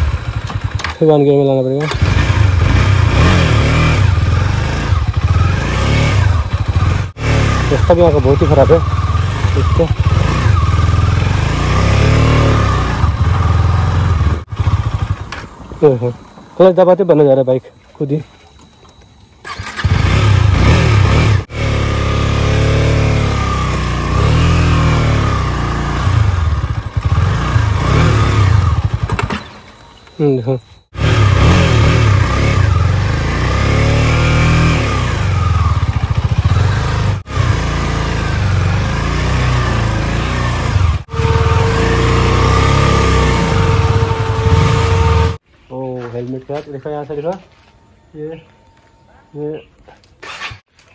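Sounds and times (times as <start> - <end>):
motorcycle engine revving: 0.0 - 16.1, 19.4 - 45.4, 50.2 - 50.7.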